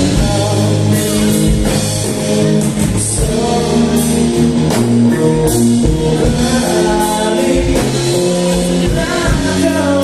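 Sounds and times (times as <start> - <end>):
person singing: 0.0 - 10.0
rock band playing: 0.0 - 10.0.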